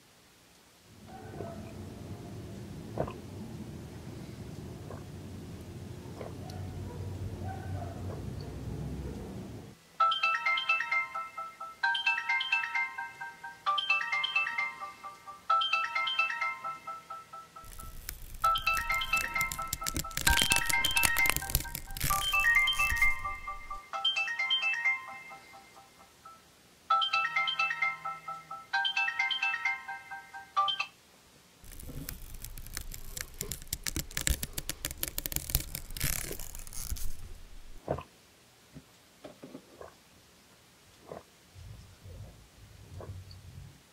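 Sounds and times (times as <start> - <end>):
alarm ringtone melody: 10.0 - 17.7, 23.7 - 30.9.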